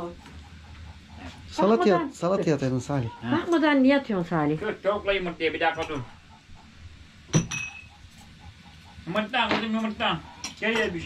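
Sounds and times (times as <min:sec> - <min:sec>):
tableware clinking on plate: 0:05.7 - 0:06.1, 0:07.3 - 0:08.0, 0:09.4 - 0:11.0.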